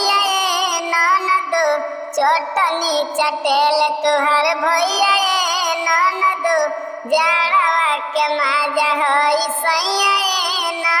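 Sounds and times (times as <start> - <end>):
high-pitched voice singing folk song: 0.0 - 11.0.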